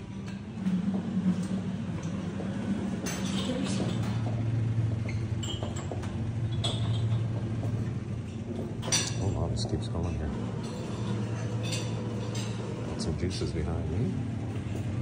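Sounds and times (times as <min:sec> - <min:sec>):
steady low hum: 0:00.0 - 0:15.0
dishes and glass clinking: 0:02.9 - 0:04.4, 0:05.0 - 0:13.1.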